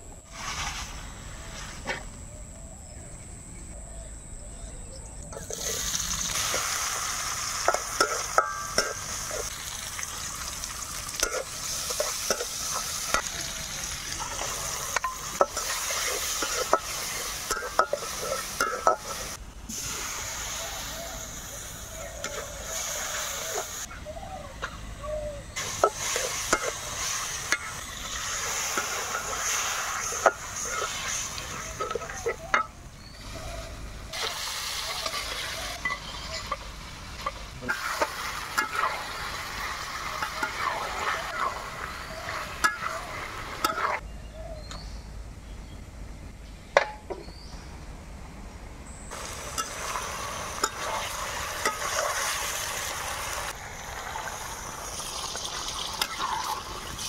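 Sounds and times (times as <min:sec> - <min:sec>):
food sizzling in wok: 0:00.2 - 0:01.7, 0:05.3 - 0:23.9, 0:25.6 - 0:44.0, 0:49.1 - 0:57.0
spatula scraping wok: 0:05.3 - 0:09.6, 0:11.2 - 0:23.9, 0:25.6 - 0:44.0, 0:49.2 - 0:53.5.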